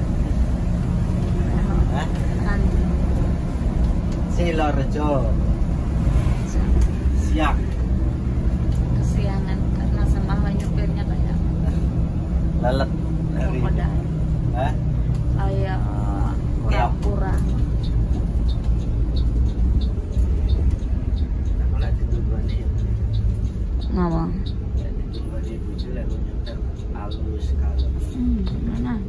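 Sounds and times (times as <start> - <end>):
bus engine drone: 0.0 - 29.0
people talking: 1.5 - 2.8, 8.9 - 11.8, 12.6 - 14.8, 15.4 - 17.6, 21.5 - 22.8, 23.8 - 29.0.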